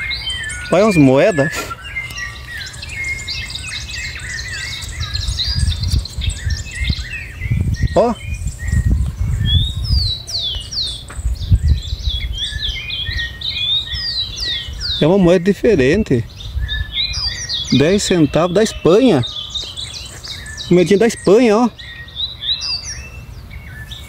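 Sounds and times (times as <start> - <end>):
birds chirping: 0.0 - 24.0.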